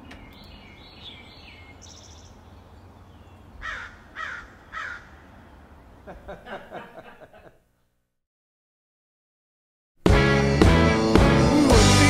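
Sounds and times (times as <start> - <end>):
bird chirps: 0.0 - 6.1
harsh bird calls: 0.0 - 6.4.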